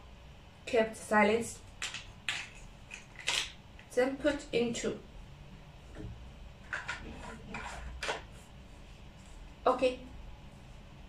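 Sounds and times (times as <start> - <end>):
plastic parts clicking: 1.8 - 3.6.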